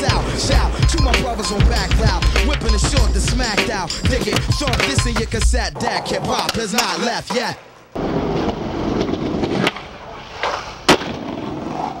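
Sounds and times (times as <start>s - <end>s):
skateboard wheels rolling on stone: 4.3s - 12.0s
skateboard impact: 6.0s - 12.0s.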